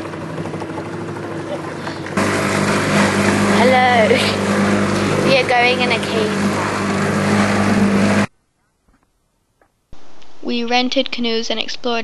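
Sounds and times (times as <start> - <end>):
small boat motor running: 0.0 - 8.3
water noise: 0.0 - 8.3.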